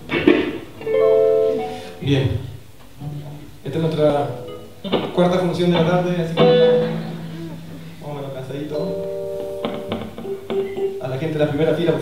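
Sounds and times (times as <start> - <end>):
electric guitar chord ringing: 0.6 - 2.2, 4.1 - 12.0
held electric guitar note: 5.8 - 11.1.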